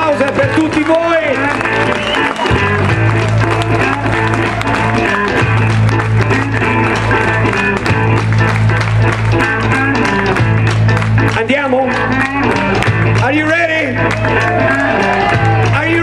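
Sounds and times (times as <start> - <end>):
drums: 0.0 - 16.0
electric guitar: 0.0 - 16.0.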